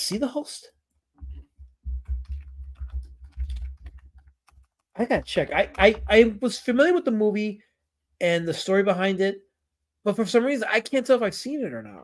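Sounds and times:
keyboard typing: 0:01.2 - 0:06.4.

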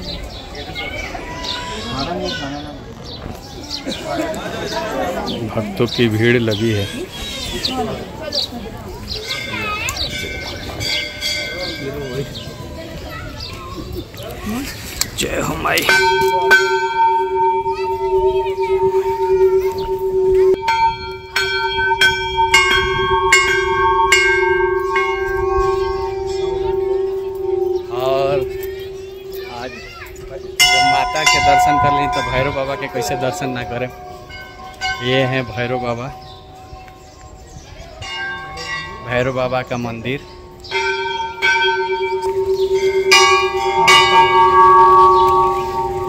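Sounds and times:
large metal bells ringing: 0:04.6 - 0:13.5, 0:15.2 - 0:46.0.

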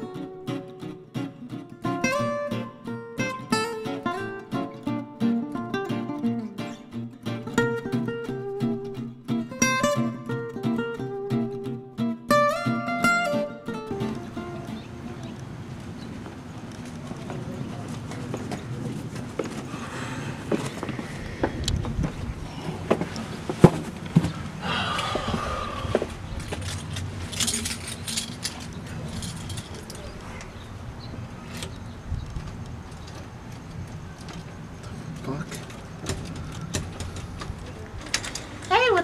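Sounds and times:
footsteps on concrete: 0:15.7 - 0:27.3
keys jangling in door lock: 0:26.5 - 0:30.6.

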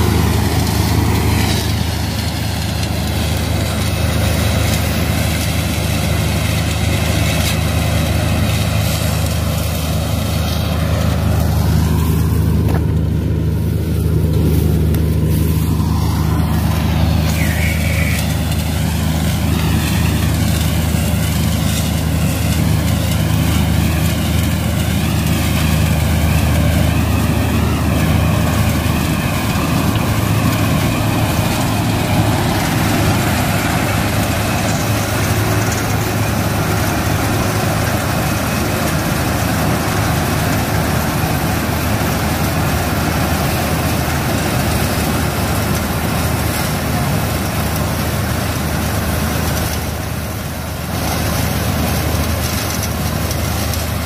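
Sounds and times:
combine harvester engine hum: 0:00.0 - 0:54.0
wavering machine whine: 0:00.0 - 0:54.0.

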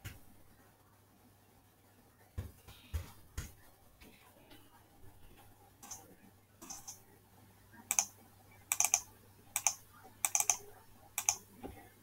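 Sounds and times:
keyboard keys clicking: 0:08.7 - 0:09.0, 0:09.6 - 0:10.6, 0:11.2 - 0:11.4.

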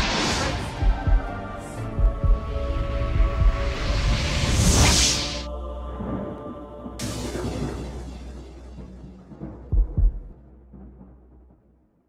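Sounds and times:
closing music: 0:00.0 - 0:11.6
deep bass thumps: 0:07.0 - 0:11.1.

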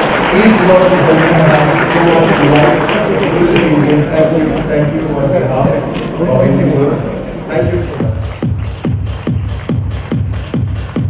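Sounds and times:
audience applauding: 0:00.0 - 0:05.2
person speaking: 0:00.3 - 0:08.5
music: 0:07.6 - 0:11.0.

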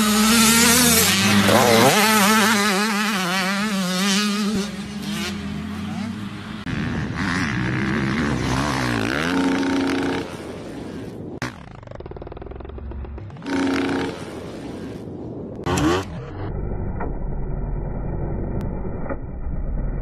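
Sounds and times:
dirt bike engine revving: 0:00.0 - 0:16.7.

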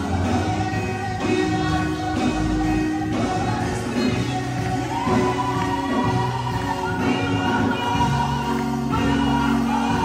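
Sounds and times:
group singing gospel song: 0:00.0 - 0:10.0.

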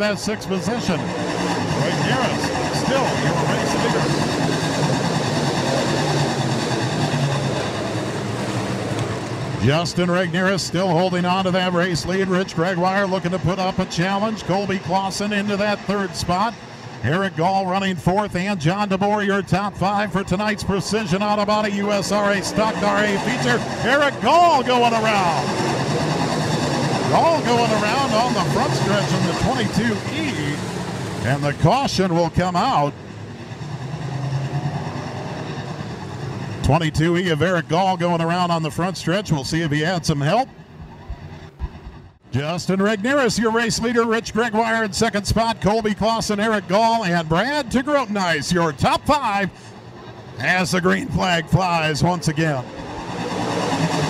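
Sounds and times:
racing car engines droning: 0:00.0 - 0:54.0.

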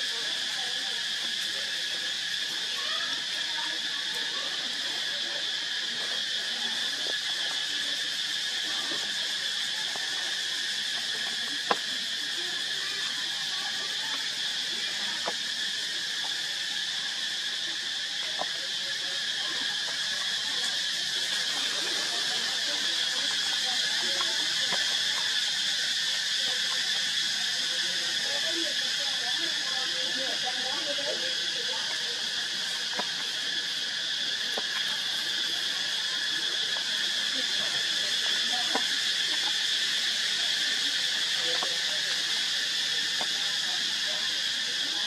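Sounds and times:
faint murmuring voices: 0:00.0 - 0:45.0
insects droning: 0:00.0 - 0:45.0.

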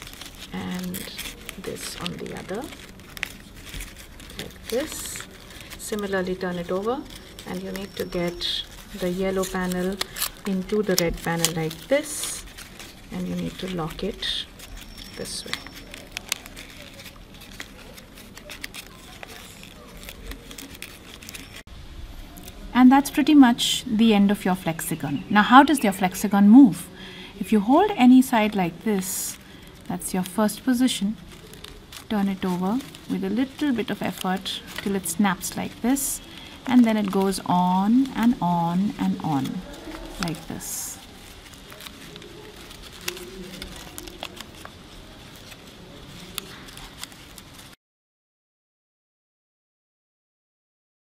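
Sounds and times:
small paper clicks and crackles: 0:00.0 - 0:47.8
stiff paper rustling and crinkling: 0:00.0 - 0:47.8.

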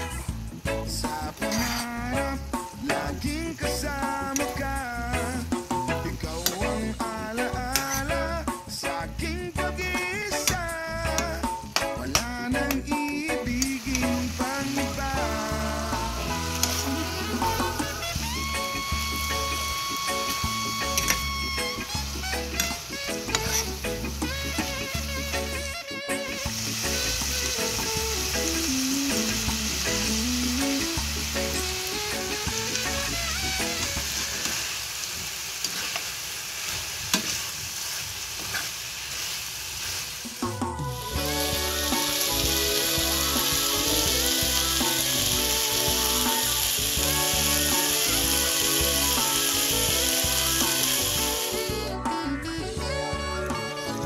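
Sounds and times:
spatula stirring in a wok: 0:00.0 - 0:03.1, 0:03.9 - 0:08.6, 0:10.0 - 0:25.6, 0:26.4 - 0:51.8
background music: 0:00.0 - 0:34.6, 0:40.3 - 0:54.0
meat sizzling in a wok: 0:00.0 - 0:51.9.

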